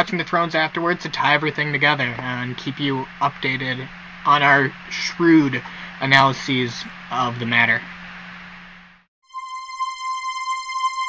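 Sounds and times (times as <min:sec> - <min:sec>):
buzzy synthesizer tone: 0:06.7 - 0:08.4, 0:09.2 - 0:11.0.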